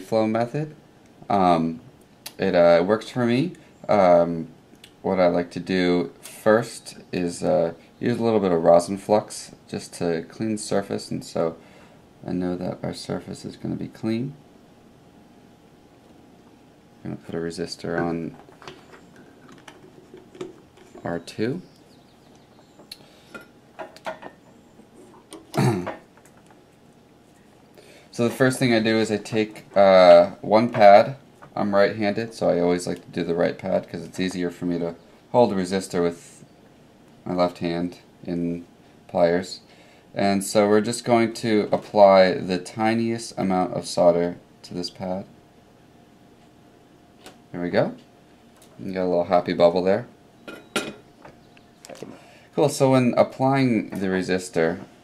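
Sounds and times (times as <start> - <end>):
person clearing throat: 25.5 - 26.0.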